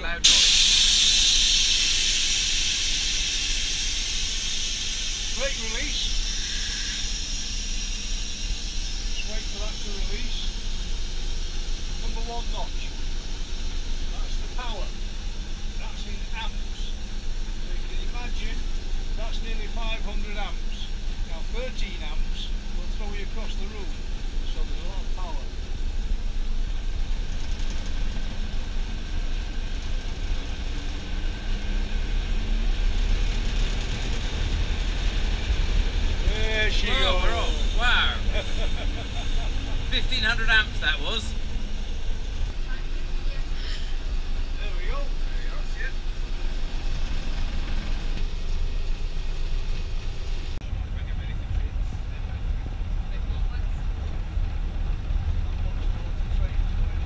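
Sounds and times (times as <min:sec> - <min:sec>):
diesel locomotive engine rumble: 0:00.0 - 0:57.0.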